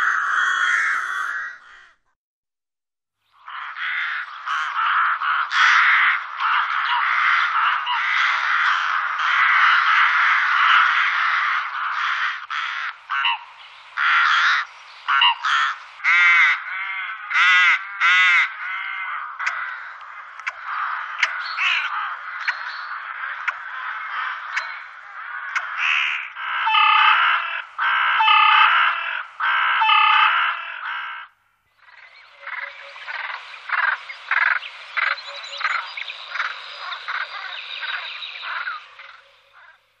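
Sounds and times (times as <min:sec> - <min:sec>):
rooks cawing: 0:00.0 - 0:02.0, 0:03.4 - 0:39.8.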